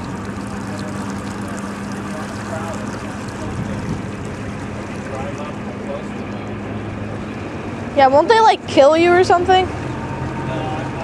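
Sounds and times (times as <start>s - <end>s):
boat engine running: 0.0s - 11.0s
water and air noise: 0.0s - 11.0s.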